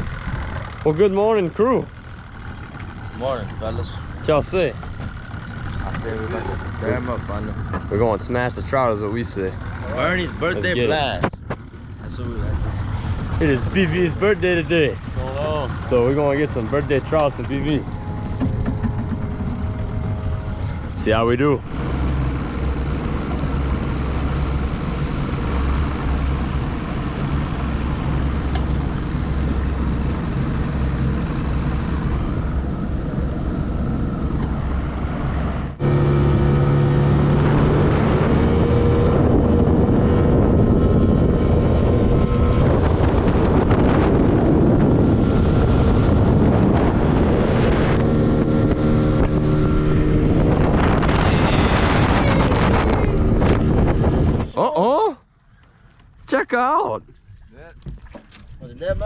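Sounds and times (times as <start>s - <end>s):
wind buffeting microphone: 0.0s - 54.6s
boat engine humming: 0.0s - 59.0s.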